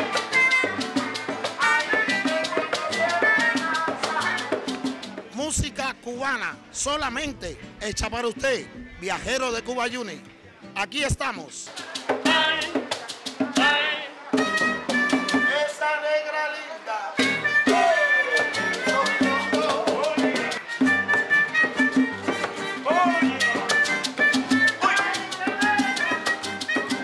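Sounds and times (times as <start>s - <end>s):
person singing: 0.0s - 4.9s, 17.6s - 20.8s
bongos: 0.0s - 6.0s, 11.5s - 15.7s, 17.2s - 27.0s
maracas shaking: 0.0s - 6.0s, 10.8s - 15.6s, 17.2s - 27.0s
acoustic guitar: 0.0s - 27.0s.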